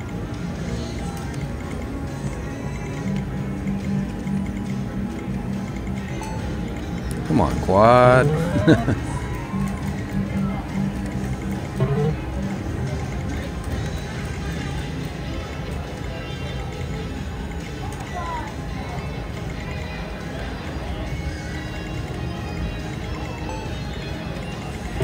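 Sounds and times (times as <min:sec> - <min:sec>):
background chatter: 0:00.0 - 0:25.0
video poker machine sounds: 0:06.1 - 0:10.0, 0:10.8 - 0:12.6
slot machine music and jingles: 0:06.2 - 0:09.0, 0:11.8 - 0:12.2.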